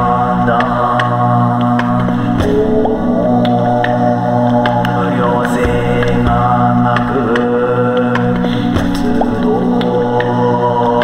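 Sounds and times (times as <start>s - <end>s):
beatboxed percussion clicks: 0.0s - 11.0s
man chanting drone: 0.0s - 11.0s.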